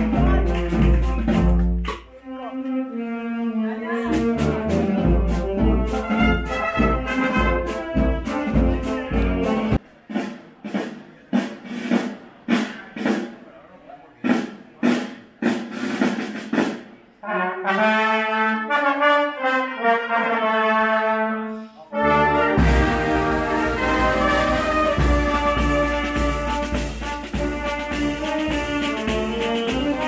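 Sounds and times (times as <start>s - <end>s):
drums: 0.0s - 2.1s, 4.1s - 17.2s, 22.3s - 30.0s
marching brass band playing: 0.0s - 2.1s, 4.1s - 11.0s, 14.3s - 30.0s.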